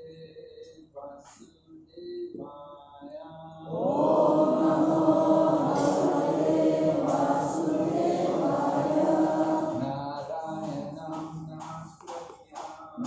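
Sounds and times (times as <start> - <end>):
group chanting in unison: 3.6 - 11.2.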